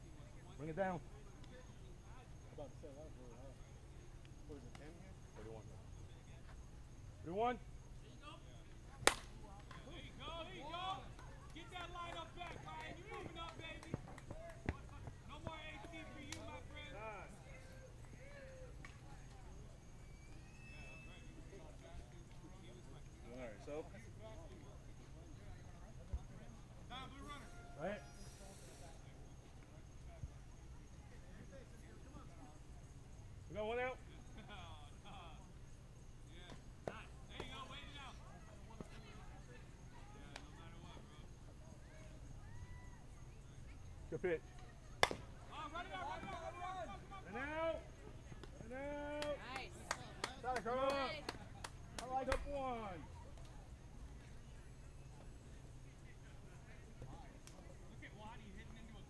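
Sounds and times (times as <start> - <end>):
bat hitting ball crack: 9.0 - 9.8, 45.0 - 45.3
distant men calling: 9.8 - 31.0, 31.7 - 59.0
players shouting: 45.0 - 48.0.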